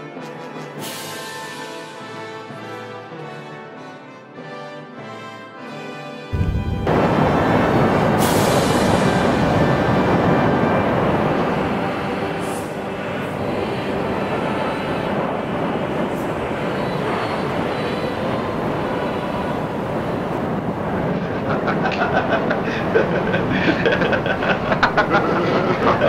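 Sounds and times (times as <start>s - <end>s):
lava lake rumbling roar: 6.4s - 26.0s
falling hiss: 6.9s - 25.9s.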